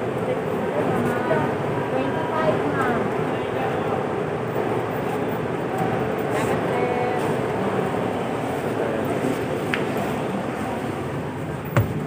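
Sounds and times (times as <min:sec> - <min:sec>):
faint voices: 0:00.0 - 0:11.6.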